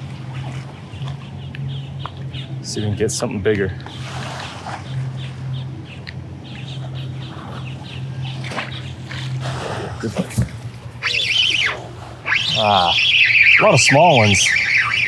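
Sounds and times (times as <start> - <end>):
steady low hum: 0.0 - 15.0
bird squawking: 3.9 - 9.5, 10.9 - 15.0.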